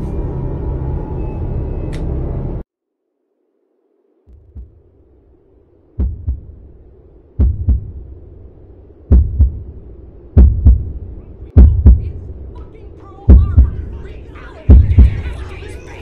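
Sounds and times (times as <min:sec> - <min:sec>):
faint steady hum: 0:00.0 - 0:16.0
heartbeat thumps: 0:04.3 - 0:05.0, 0:06.0 - 0:08.4, 0:09.0 - 0:12.5, 0:13.2 - 0:15.4.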